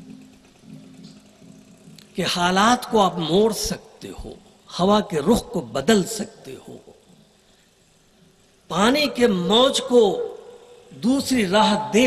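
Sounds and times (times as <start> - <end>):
faint low hum: 0.0 - 9.2.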